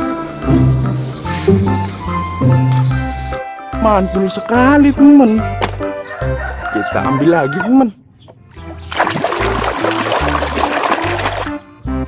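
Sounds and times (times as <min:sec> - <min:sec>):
background music with low beat: 0:00.0 - 0:07.3
water splashing and running: 0:08.6 - 0:11.6.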